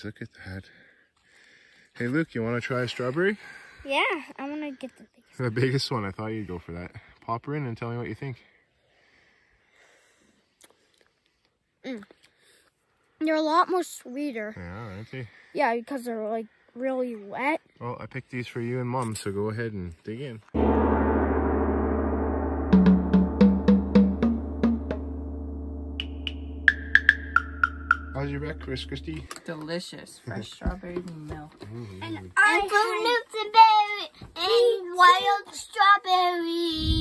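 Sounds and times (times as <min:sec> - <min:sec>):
ringing gong-like tone: 0:20.6 - 0:29.3
short struck notes: 0:20.6 - 0:29.3.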